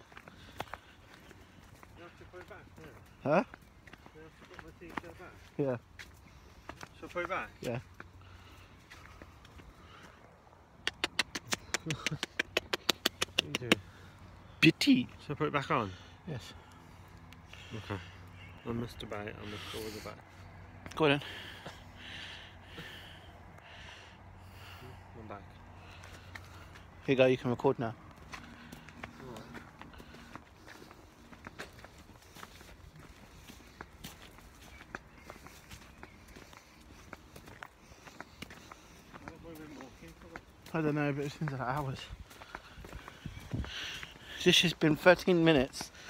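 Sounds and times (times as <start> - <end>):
footsteps on dirt path: 0.0 - 46.0.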